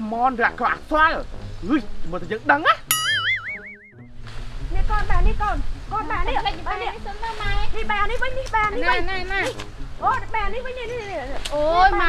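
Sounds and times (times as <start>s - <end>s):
comic boing sound effect: 2.9s - 4.1s.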